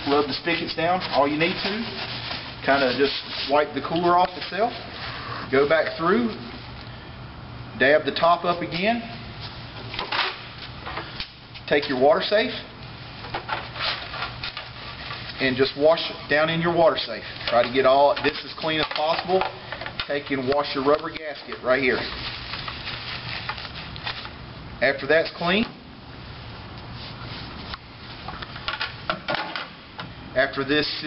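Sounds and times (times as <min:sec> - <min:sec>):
plastic handling: 0:00.0 - 0:05.1, 0:13.2 - 0:24.4
paper towel wiping plastic: 0:00.0 - 0:06.5, 0:20.1 - 0:24.3.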